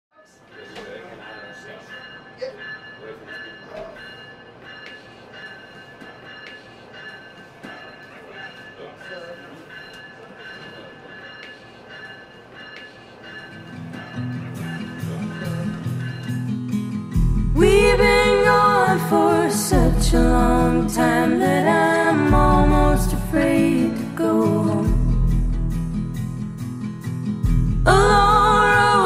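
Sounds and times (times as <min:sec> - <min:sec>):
muffled voices: 0:00.1 - 0:04.2, 0:13.8 - 0:16.5
low music: 0:13.4 - 0:29.0.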